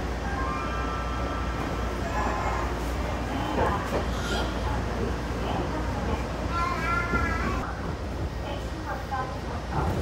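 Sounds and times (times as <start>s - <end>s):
train running rumble: 1.3s - 10.0s.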